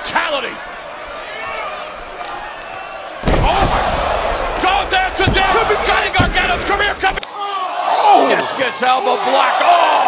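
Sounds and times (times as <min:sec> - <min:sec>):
arena crowd noise: 0:00.0 - 0:10.0
loud voices: 0:00.0 - 0:10.0.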